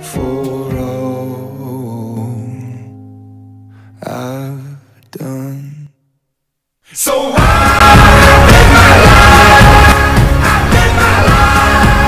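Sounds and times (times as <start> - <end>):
loud music: 7.3 - 12.0.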